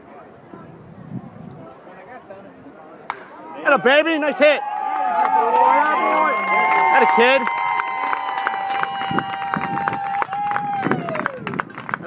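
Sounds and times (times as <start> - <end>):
spectator cheering yell: 3.6 - 11.4.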